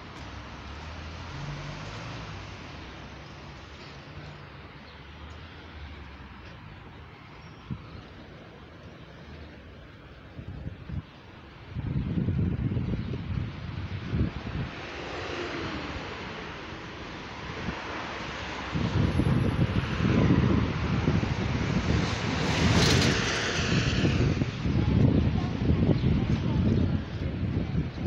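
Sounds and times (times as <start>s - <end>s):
street traffic passing: 0.0s - 28.0s
wind gusting on microphone: 10.1s - 28.0s.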